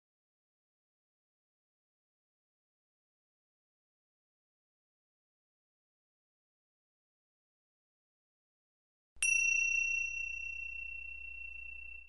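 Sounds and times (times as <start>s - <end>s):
high bell-like chime: 9.2s - 12.0s.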